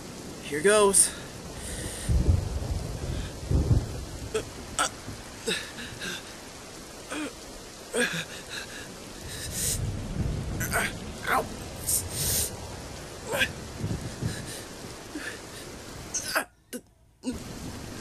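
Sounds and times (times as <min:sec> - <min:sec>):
thunder rumbling: 0:00.0 - 0:16.3, 0:17.3 - 0:18.0
steady rain: 0:00.0 - 0:18.0.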